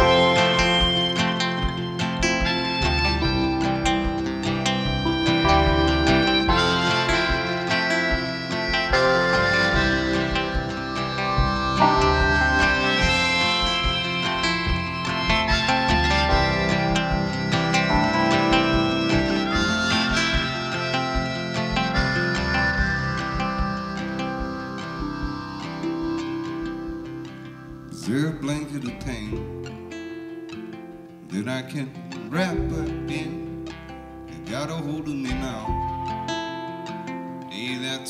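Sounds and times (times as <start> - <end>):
drums: 0.0 - 29.8
upright bass: 0.0 - 29.9, 31.8 - 36.3
harmonica: 0.0 - 31.4
acoustic guitar: 0.0 - 38.0
keyboard: 0.0 - 38.0.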